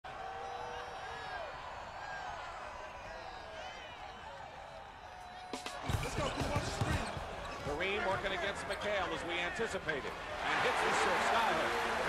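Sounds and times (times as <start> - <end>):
basketball bouncing on hardwood: 5.9 - 8.4.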